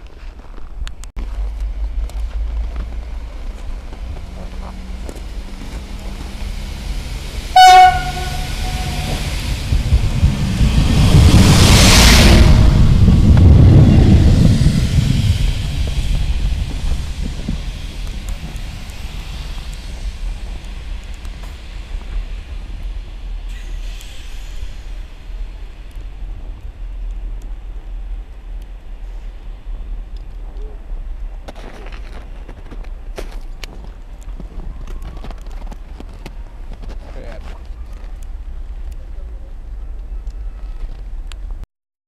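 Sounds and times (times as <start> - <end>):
railbus engine and wheels passing: 0.0 - 41.6
train horn blast: 5.8 - 9.7.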